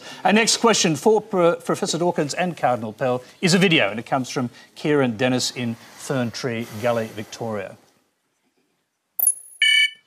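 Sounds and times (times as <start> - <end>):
high electronic ping: 9.2 - 10.0.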